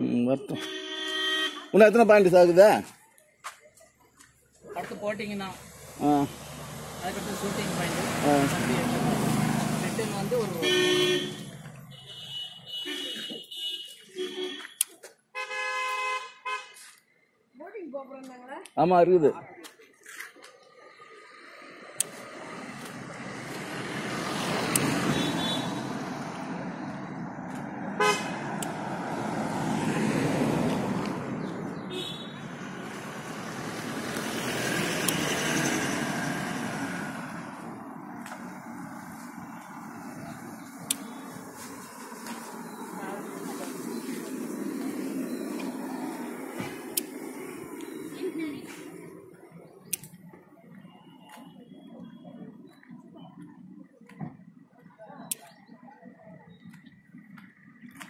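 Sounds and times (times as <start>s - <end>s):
road traffic noise: 0.0s - 58.0s
vehicle horn blast: 0.4s - 1.8s, 10.5s - 16.9s, 25.0s - 25.9s, 28.0s - 28.5s, 31.9s - 32.5s
sharp clicks: 40.8s - 41.1s, 49.9s - 50.2s.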